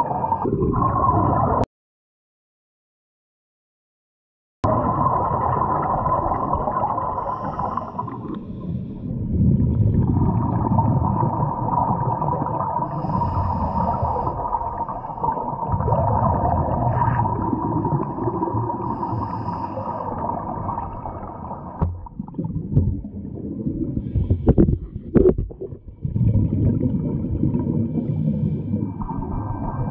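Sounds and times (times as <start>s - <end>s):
steady underwater hum: 0.0s - 1.6s, 4.6s - 29.9s
diver breathing through regulator: 6.2s - 9.2s, 12.8s - 15.6s, 17.9s - 20.5s, 24.0s - 25.1s, 27.9s - 29.0s.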